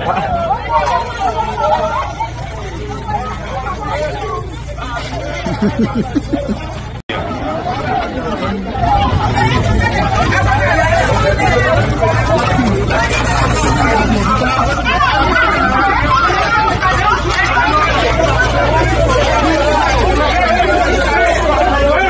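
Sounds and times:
crowd talking and shouting: 0.0 - 22.0.

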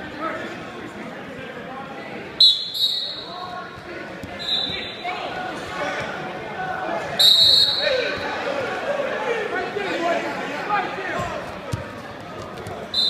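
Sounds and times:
voices in a large hall: 0.0 - 13.0
referee's whistle blasts: 2.4 - 3.4, 4.4 - 5.1, 7.2 - 8.2.

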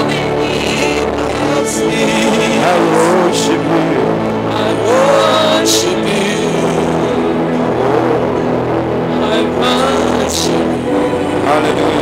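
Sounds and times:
person praying: 0.0 - 8.4, 9.1 - 12.0
keyboard playing held chords: 0.0 - 12.0.

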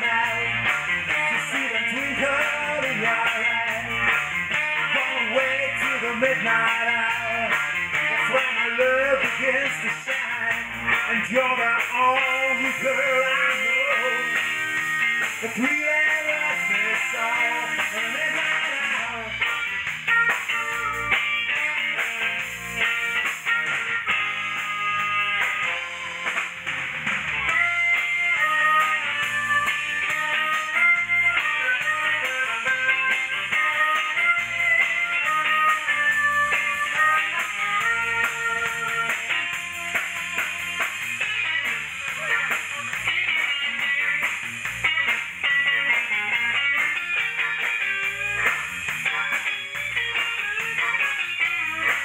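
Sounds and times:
electric guitar: 0.0 - 52.0
live soul band playing: 0.0 - 52.0.

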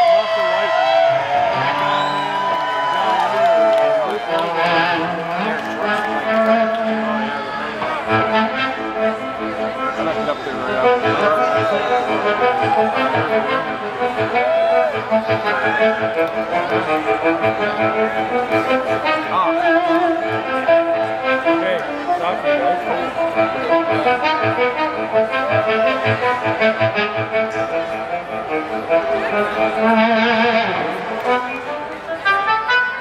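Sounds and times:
electric guitar lead: 0.0 - 33.0
blues-rock band playing: 4.3 - 7.2, 7.8 - 32.2.

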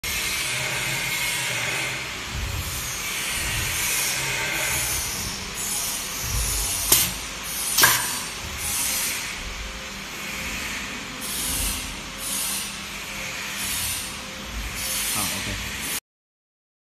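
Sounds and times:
compressed air hissing: 4.9 - 8.9.

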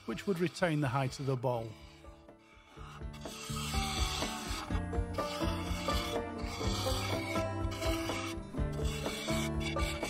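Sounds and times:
gouge scraping wood on lathe: 0.0 - 10.0
wood lathe running: 0.0 - 10.0.

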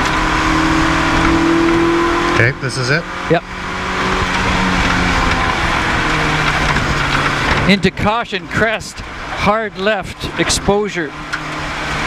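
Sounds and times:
car engine running: 0.0 - 12.0
road and tyre noise: 0.0 - 12.0.

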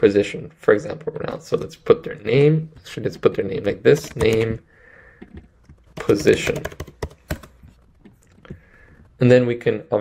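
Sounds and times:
computer keyboard keystrokes: 3.9 - 4.6, 5.2 - 8.6.

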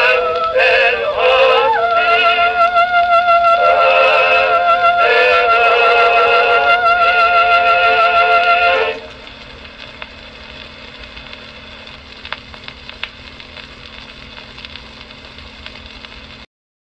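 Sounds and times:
crackles and sharp ticks: 0.0 - 0.6, 8.4 - 16.4
vocal quartet chord on phonograph: 0.0 - 9.1
low steady hum: 0.0 - 16.4
record surface hiss: 0.0 - 16.5.

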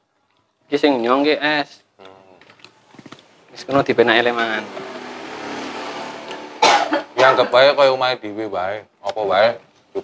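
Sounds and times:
steady background noise: 0.0 - 10.0
men speaking: 0.7 - 2.6, 3.4 - 10.0.

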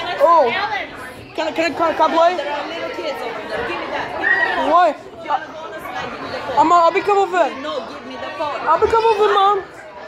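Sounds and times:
chatter of several voices: 0.0 - 10.0.

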